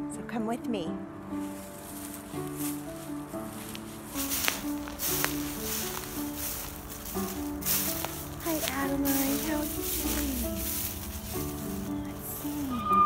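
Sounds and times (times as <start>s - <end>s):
background music with held notes: 0.0s - 13.0s
footsteps crunching dry leaves: 1.4s - 13.0s.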